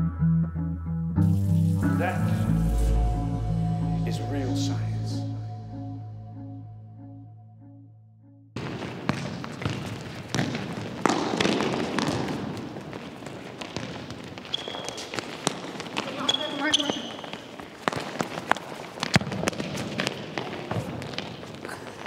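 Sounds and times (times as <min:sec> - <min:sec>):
shoes squeaking on floor: 0:08.6 - 0:22.0
ball kicked and bouncing on wood: 0:09.1 - 0:12.6.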